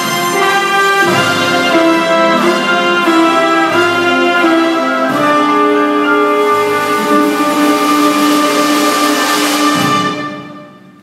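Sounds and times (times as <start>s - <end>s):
jazz orchestra sustained chord: 0.0s - 11.0s.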